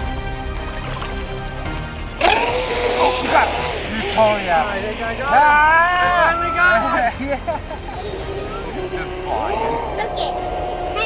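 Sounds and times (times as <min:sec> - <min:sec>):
electric motor whining: 0:02.2 - 0:06.1, 0:07.8 - 0:11.0.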